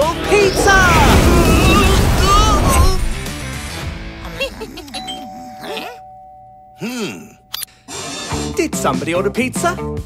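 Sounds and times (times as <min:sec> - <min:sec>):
cartoon background music: 0:00.0 - 0:06.0, 0:07.9 - 0:10.0
doorbell chime: 0:05.0 - 0:07.6.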